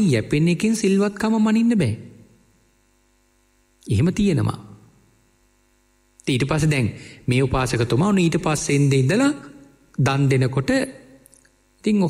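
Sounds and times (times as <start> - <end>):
man speaking: 0.0 - 2.2, 3.8 - 4.9, 6.2 - 11.2, 11.8 - 12.0
faint mains hum: 0.0 - 12.0.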